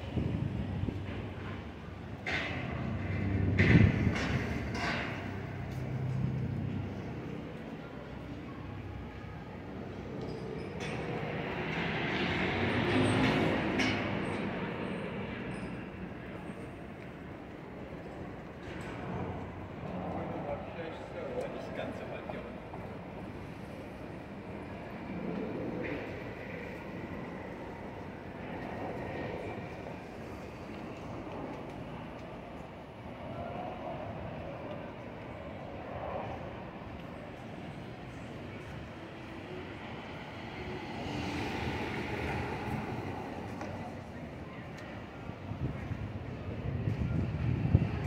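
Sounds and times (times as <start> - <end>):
street traffic rumble: 0.0 - 48.0.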